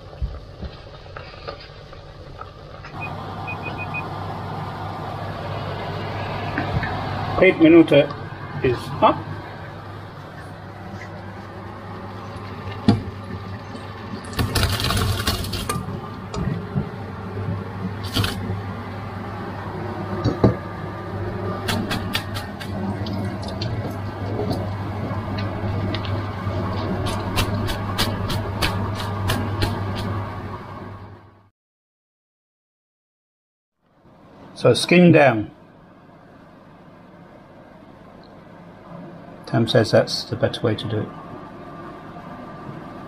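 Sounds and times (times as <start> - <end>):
low hum: 0.0 - 31.5.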